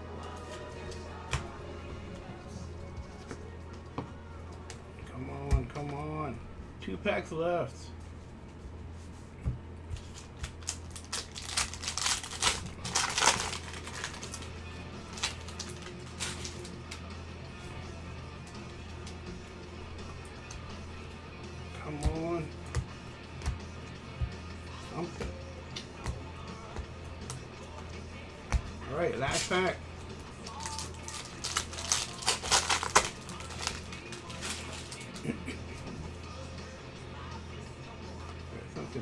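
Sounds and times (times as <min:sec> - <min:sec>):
trading cards rustling and clicking: 0:09.9 - 0:14.5, 0:15.1 - 0:17.1, 0:29.2 - 0:35.3.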